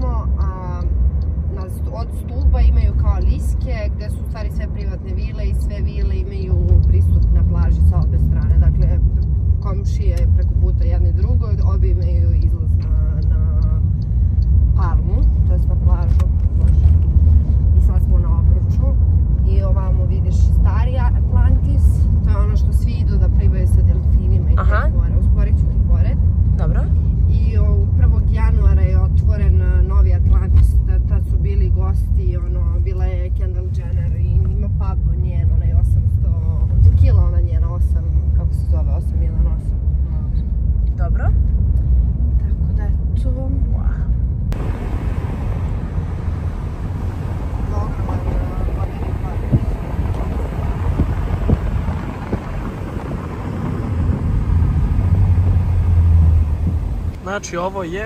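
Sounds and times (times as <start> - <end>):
voices: 0.0 - 14.1, 14.7 - 16.8, 17.8 - 40.3, 44.6 - 53.7
car cabin road and engine rumble: 0.0 - 58.0.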